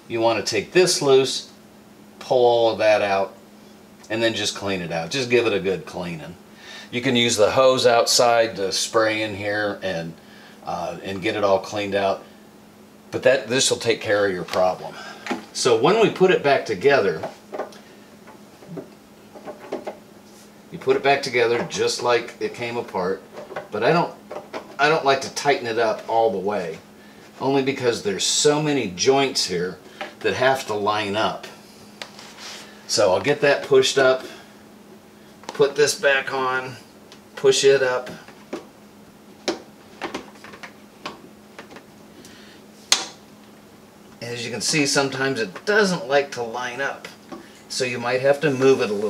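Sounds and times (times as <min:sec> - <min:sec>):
faint steady hum: 0:00.0 - 0:49.0.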